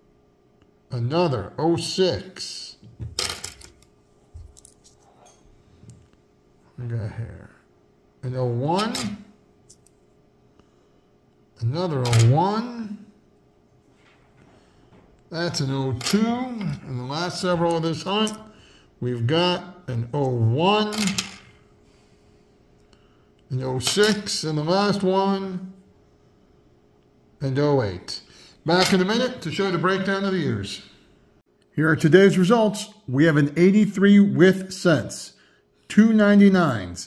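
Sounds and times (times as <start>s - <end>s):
faint steady hum: 0.0s - 37.0s
man speaking: 0.9s - 2.9s, 6.7s - 9.2s, 11.6s - 13.2s, 15.3s - 21.2s, 23.5s - 25.8s, 27.4s - 31.0s, 31.7s - 37.0s
coins clinking: 3.2s - 5.4s, 12.0s - 12.3s, 15.5s - 16.9s, 20.9s - 21.6s, 23.8s - 24.4s.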